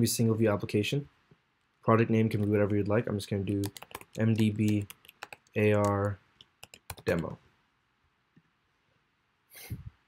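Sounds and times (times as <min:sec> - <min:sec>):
person sniffing: 0:09.5 - 0:10.0.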